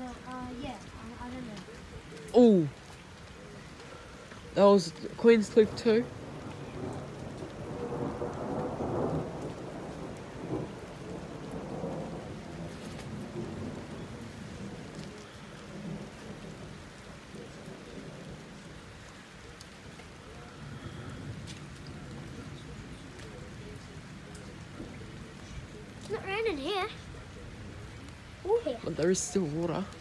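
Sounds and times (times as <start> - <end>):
steady rain falling: 0.0 - 30.0
rolling thunder: 5.1 - 30.0.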